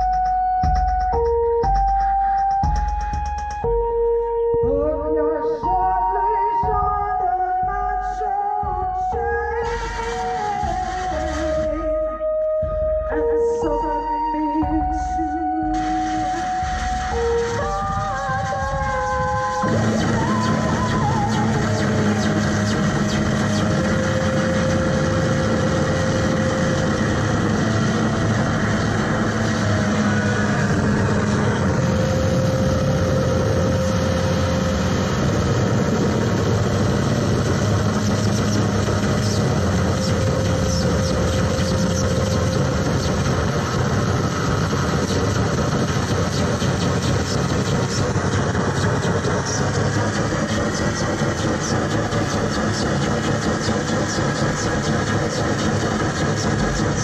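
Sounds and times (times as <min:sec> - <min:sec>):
electronic noise music drone: 0:00.0 - 0:57.0.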